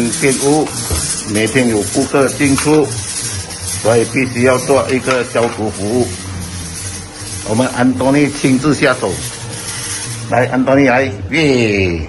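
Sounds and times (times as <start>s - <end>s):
person speaking: 0.0s - 3.1s, 3.7s - 6.6s, 7.4s - 9.4s
steady low hum: 0.0s - 12.0s.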